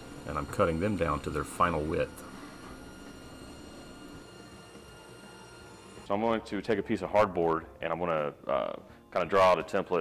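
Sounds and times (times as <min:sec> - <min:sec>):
table saw cutting board: 0:00.0 - 0:06.8.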